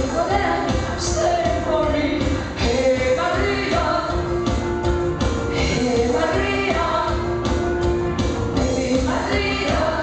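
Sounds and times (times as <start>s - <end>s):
bass guitar: 0.0s - 10.0s
drums: 0.0s - 10.0s
live rock band playing: 0.0s - 10.0s.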